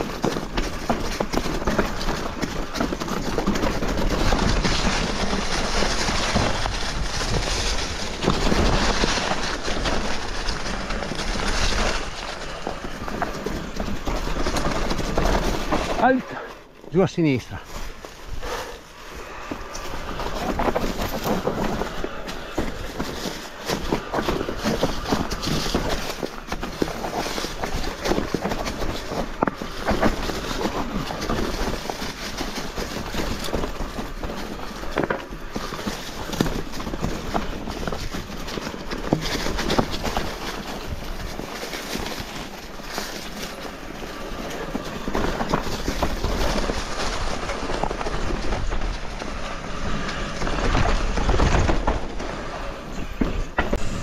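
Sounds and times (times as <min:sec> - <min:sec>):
bike knocks and rattles: 0:00.0 - 0:16.5, 0:19.2 - 0:54.0
wind noise: 0:00.0 - 0:16.5, 0:17.5 - 0:54.0
tyre noise: 0:00.0 - 0:54.0.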